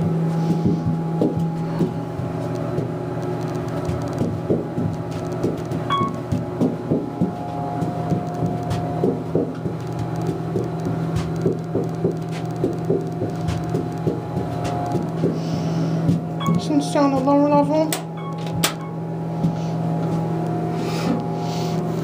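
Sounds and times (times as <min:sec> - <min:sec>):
elevator cab humming: 0:00.0 - 0:22.0.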